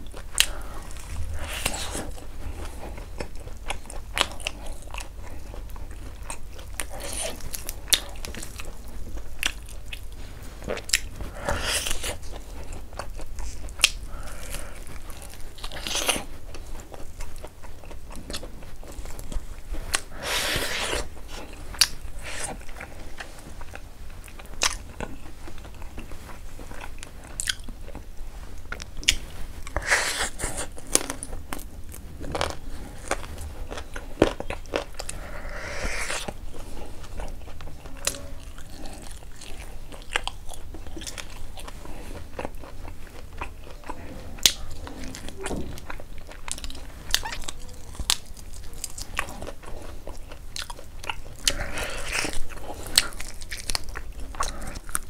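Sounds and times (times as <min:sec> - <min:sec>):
chewing chicken wing: 0:00.0 - 0:31.7, 0:32.3 - 0:55.0
hissy mouth sounds: 0:19.9 - 0:21.6, 0:35.0 - 0:36.4.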